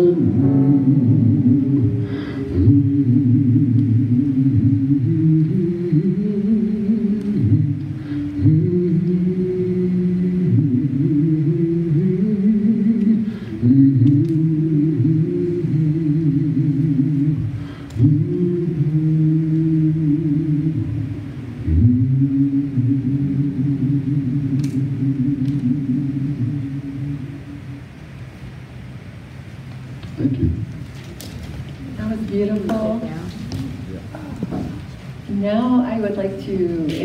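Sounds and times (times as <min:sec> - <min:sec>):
slow low chant: 0:00.0 - 0:28.0.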